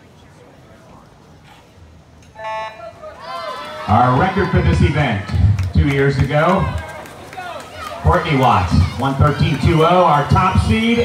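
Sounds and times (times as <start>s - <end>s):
electronic start horn beep: 2.4s - 2.8s.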